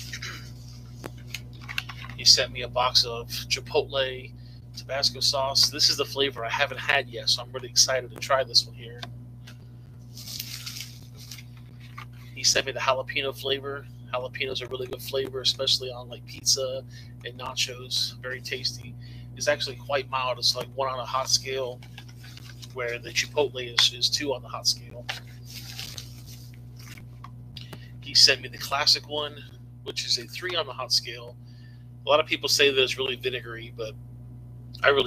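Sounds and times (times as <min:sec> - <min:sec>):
steady low hum: 0:00.0 - 0:35.0
packaging rustling and crinkling: 0:10.1 - 0:12.2, 0:21.7 - 0:22.8, 0:25.0 - 0:27.0.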